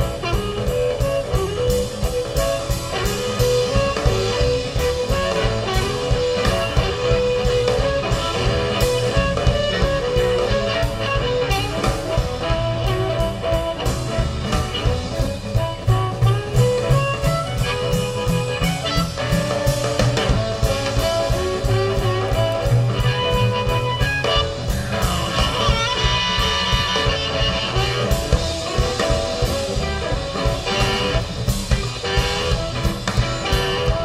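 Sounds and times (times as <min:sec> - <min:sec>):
drum kit steady beat: 0:00.0 - 0:34.0
electric guitar: 0:00.0 - 0:34.0
upright bass: 0:00.0 - 0:34.0.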